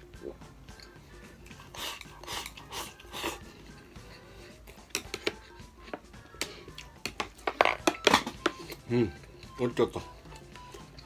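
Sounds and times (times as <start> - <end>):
chopsticks scraping rice bowl: 1.6 - 3.4.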